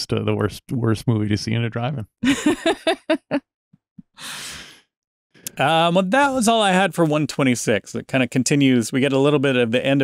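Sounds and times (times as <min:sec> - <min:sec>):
person laughing: 0:02.2 - 0:03.4
breathy sigh: 0:04.2 - 0:04.8.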